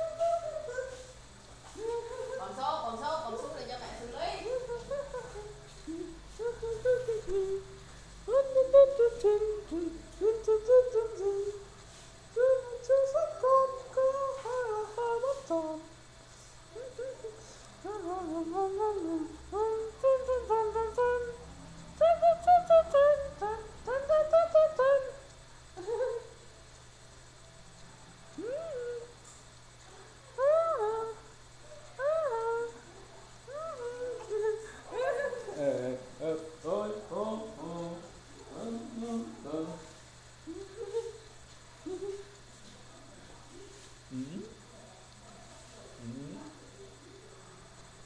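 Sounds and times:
person humming a lullaby: 0.0s - 2.6s, 4.4s - 16.0s, 16.6s - 26.4s, 28.3s - 29.4s, 30.3s - 42.4s.

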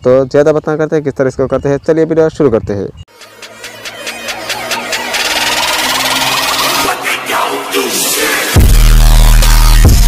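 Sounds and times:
electronic music pulse: 3.1s - 7.0s.

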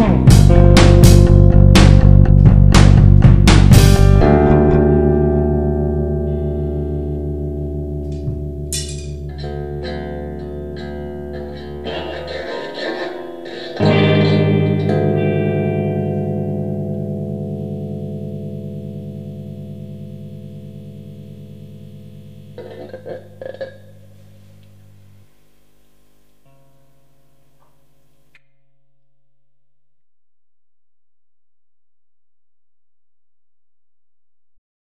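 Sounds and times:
picked guitar notes: 0.0s - 25.4s
electric guitar chords ringing: 0.0s - 28.2s.

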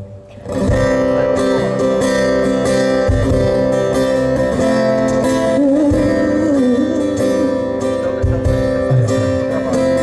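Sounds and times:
live band music: 0.0s - 10.0s
strummed acoustic guitar: 0.0s - 10.0s
low beat: 8.2s - 10.0s.

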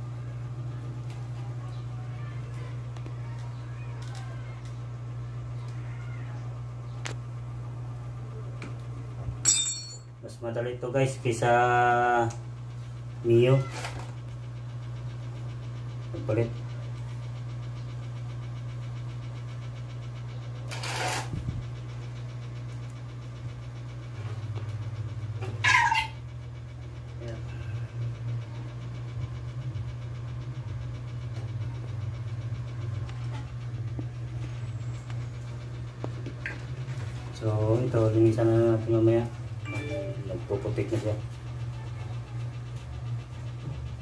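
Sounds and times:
steady low hum: 0.0s - 20.7s, 21.3s - 44.0s.

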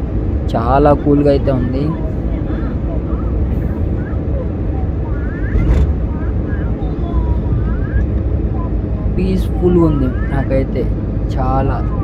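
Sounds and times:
wind and road noise: 0.0s - 12.0s
faint voices: 1.5s - 12.0s.

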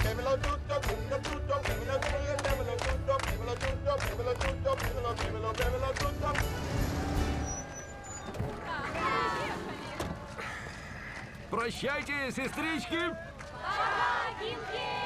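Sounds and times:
hand-clapping: 0.0s - 6.6s.

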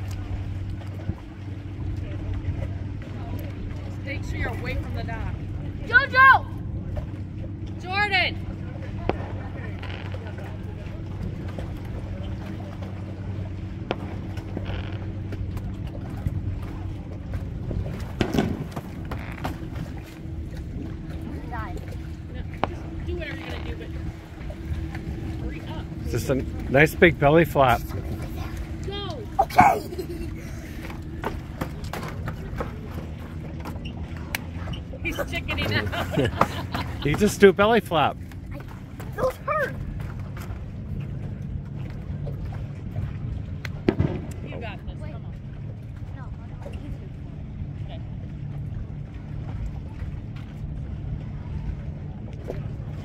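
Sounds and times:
low motor hum: 0.0s - 53.0s
steady low rumble: 0.0s - 53.0s.

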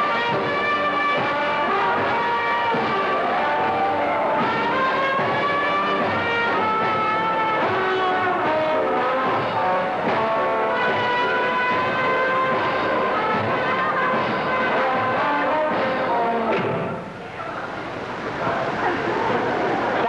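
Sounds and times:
band playing lively tune: 0.0s - 20.0s.

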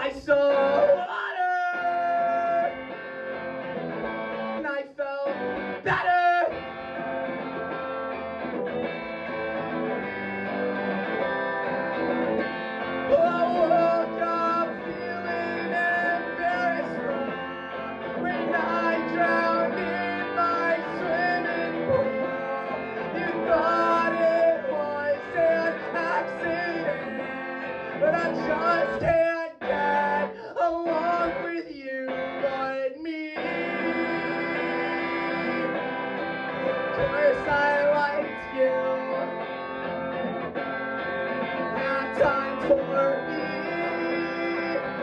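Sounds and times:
electric guitar strumming chords: 1.8s - 45.0s.

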